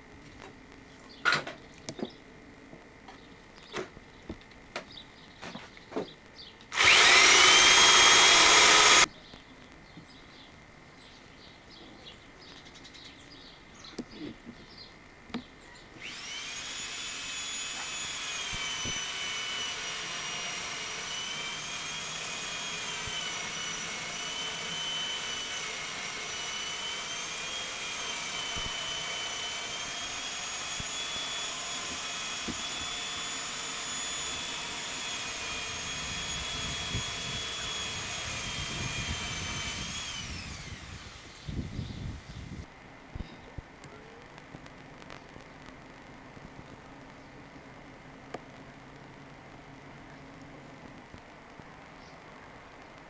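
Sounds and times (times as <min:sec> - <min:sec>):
high-pitched motor whine: 0:06.7 - 0:09.1, 0:16.0 - 0:42.7.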